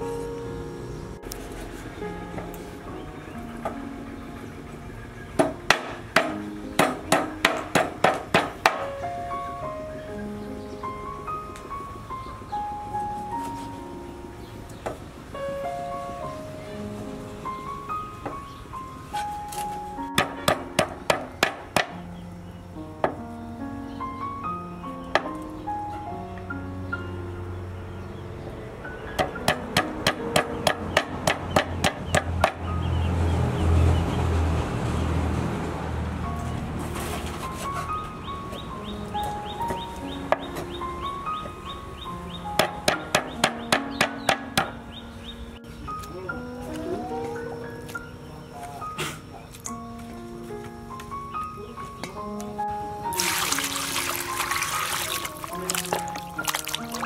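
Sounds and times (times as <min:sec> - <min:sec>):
cleaver chopping on wooden board: 0:05.4 - 0:08.9, 0:20.2 - 0:22.0.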